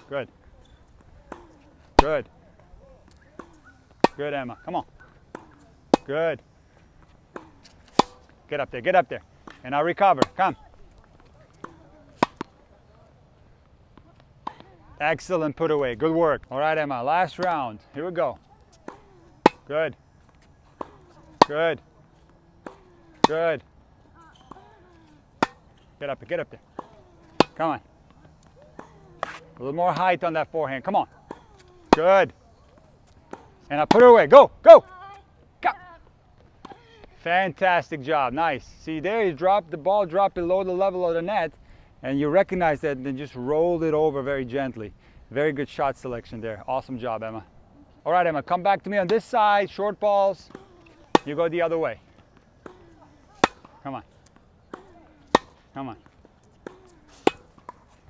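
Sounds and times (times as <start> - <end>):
racquet hitting tennis ball: 0.7 - 2.3, 3.1 - 6.2, 6.9 - 8.4, 9.4 - 10.6, 11.6 - 12.6, 18.3 - 32.2, 50.3 - 58.0
faint distant racquet hit: 7.0 - 8.4, 11.2 - 12.6, 18.3 - 19.7, 20.3 - 34.1, 50.3 - 58.0.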